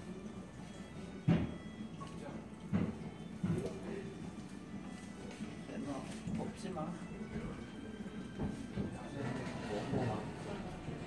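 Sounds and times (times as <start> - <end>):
cafe music: 0.0 - 11.0.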